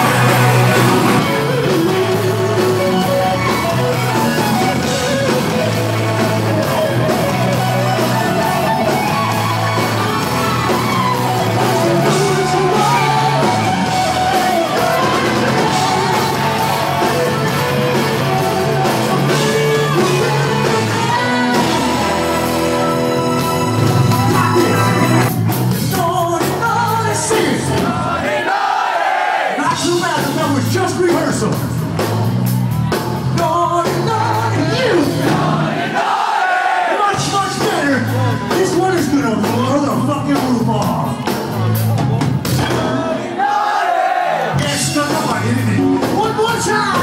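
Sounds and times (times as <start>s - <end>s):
crowd yelling: 0.0s - 25.8s, 26.8s - 30.6s, 31.9s - 39.7s, 40.7s - 47.0s
live rock band playing: 0.0s - 28.2s, 29.6s - 36.0s, 37.0s - 43.4s, 44.5s - 47.0s
person singing: 10.8s - 28.0s.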